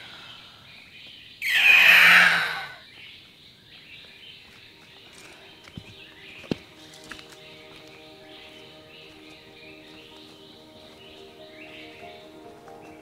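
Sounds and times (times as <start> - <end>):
faint forest birdsong: 0.0 - 13.0.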